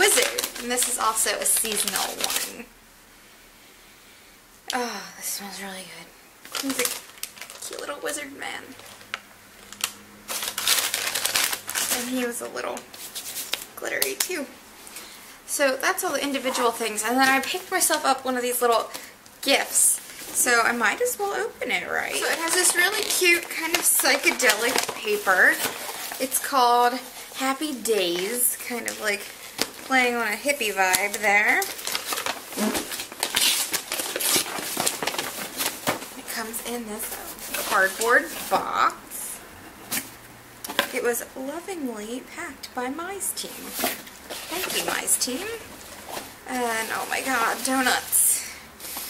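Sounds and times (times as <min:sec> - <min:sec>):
wrapping paper rustling: 0:00.0 - 0:02.7, 0:06.4 - 0:39.1, 0:43.4 - 0:49.0
paper tearing: 0:09.0 - 0:13.7, 0:22.1 - 0:27.0, 0:30.9 - 0:36.0.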